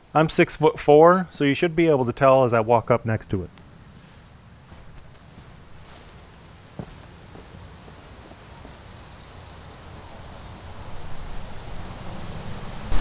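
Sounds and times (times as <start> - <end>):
footsteps on grass and dirt: 4.0 - 9.0.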